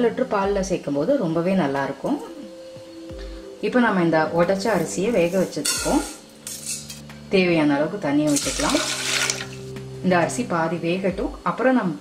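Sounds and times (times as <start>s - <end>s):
rice grains rattling on metal: 8.3s - 9.7s.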